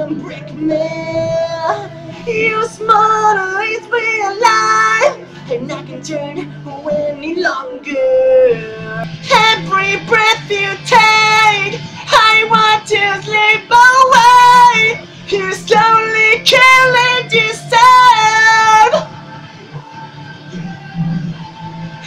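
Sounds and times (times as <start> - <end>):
young man singing rock ballad: 0.0 - 19.2.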